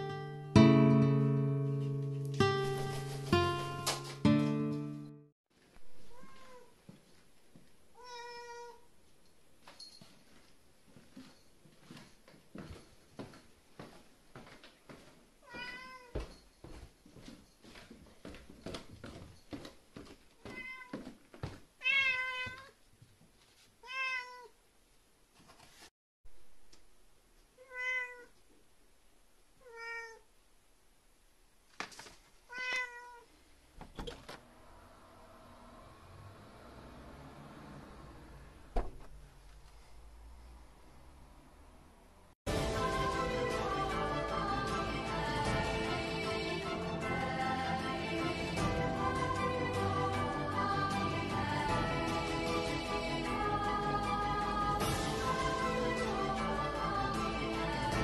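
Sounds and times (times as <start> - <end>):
cat meowing: 5.9 - 6.8, 8.0 - 8.9, 15.4 - 16.2, 20.4 - 21.0, 21.8 - 22.8, 23.8 - 24.6, 27.6 - 28.4, 29.6 - 30.3, 32.5 - 33.3.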